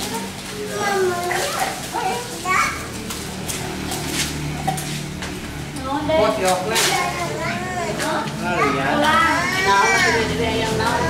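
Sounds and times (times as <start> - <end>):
children calling out: 0.0 - 3.3, 6.8 - 11.0
group chatter: 0.0 - 11.0.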